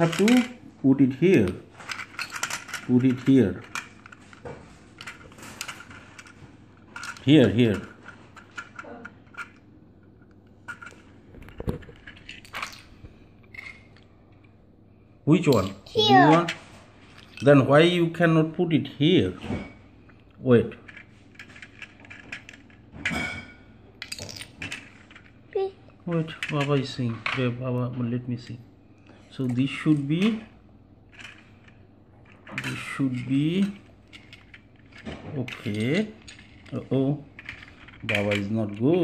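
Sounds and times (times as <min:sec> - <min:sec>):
plastic toy pieces clicking: 0:01.4 - 0:04.3, 0:31.1 - 0:38.5.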